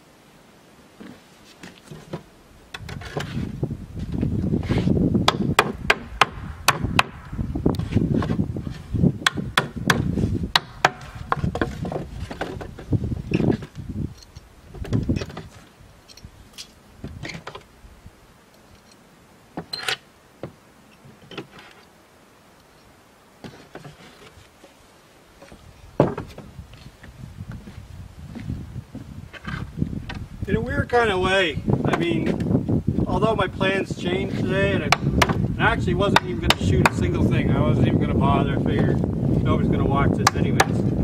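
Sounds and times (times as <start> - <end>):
wood scraping on wood: 1.0 - 6.2, 7.7 - 13.9, 14.7 - 15.8, 19.6 - 22.0, 22.6 - 31.1, 31.8 - 37.2
wooden boards knocking: 9.2 - 13.7, 26.0 - 26.5, 34.9 - 35.4, 40.2 - 40.9.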